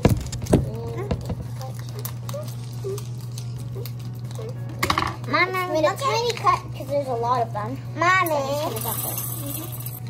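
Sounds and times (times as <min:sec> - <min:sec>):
hands tapping and rustling wrappers: 0:00.0 - 0:06.9.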